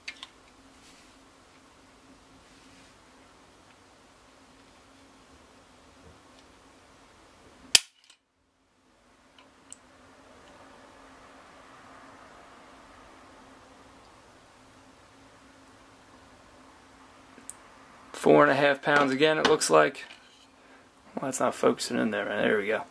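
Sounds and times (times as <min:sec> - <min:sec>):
pistol hammer snapping: 0:07.8 - 0:08.2.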